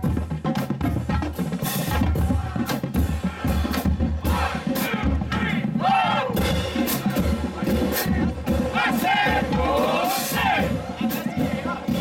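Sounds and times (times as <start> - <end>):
drums beating: 0.0 - 12.0
people shouting: 2.0 - 3.5, 4.2 - 7.1, 8.5 - 12.0.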